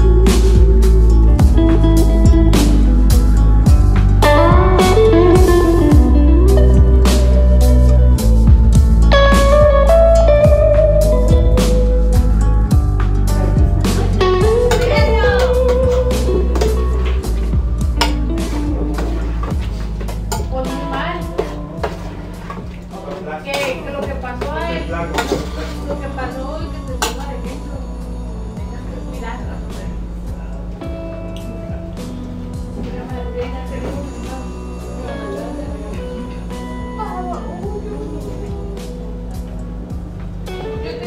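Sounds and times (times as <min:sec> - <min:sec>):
background music with voice: 0:00.0 - 0:41.0.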